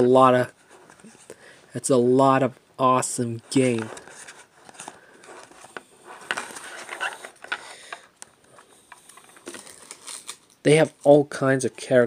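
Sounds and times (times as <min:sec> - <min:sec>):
cards rustling: 0:03.5 - 0:11.2.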